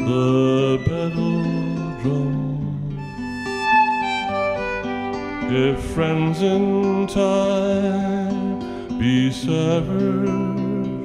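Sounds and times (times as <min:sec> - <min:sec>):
acoustic guitar: 0:00.0 - 0:11.0
violin: 0:00.0 - 0:11.0.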